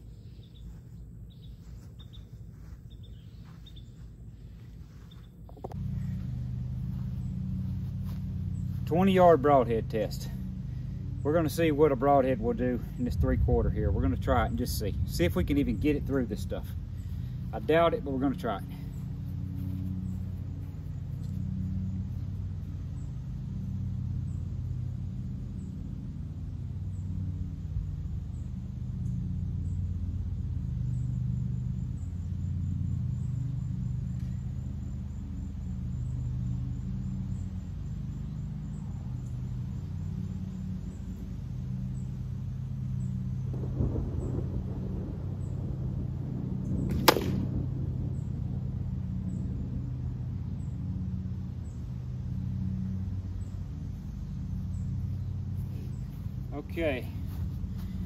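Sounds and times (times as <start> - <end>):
steady low rumble: 0.0 - 58.0
arrow striking plywood crack: 46.9 - 47.5.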